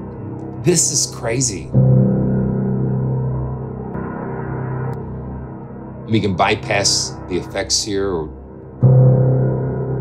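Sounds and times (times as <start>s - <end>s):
low piano chord ringing: 0.0s - 10.0s.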